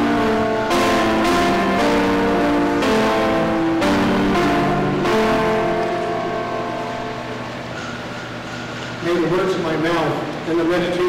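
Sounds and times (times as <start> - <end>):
keyboard playing sustained chords: 0.0 - 11.0.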